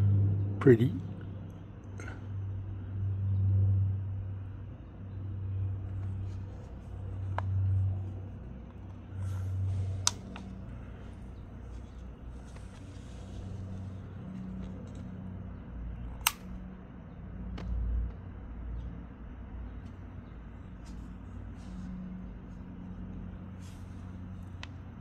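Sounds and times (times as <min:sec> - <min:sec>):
steady low rumble: 0:00.0 - 0:25.0
sharp clicks: 0:09.9 - 0:11.2, 0:16.1 - 0:16.7.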